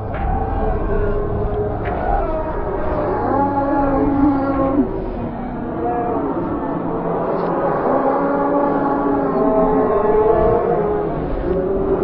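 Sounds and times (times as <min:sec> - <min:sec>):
eerie ambient music: 0:00.0 - 0:12.0.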